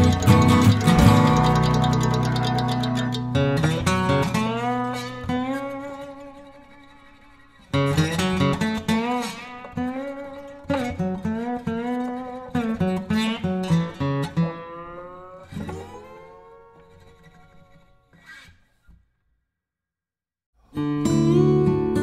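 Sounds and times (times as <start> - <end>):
acoustic guitar plucked notes: 0.0 - 17.6, 20.7 - 22.0.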